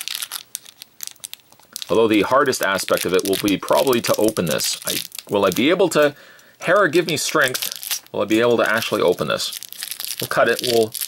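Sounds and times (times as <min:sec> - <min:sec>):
plastic candy wrapper crinkling: 0:00.0 - 0:11.0.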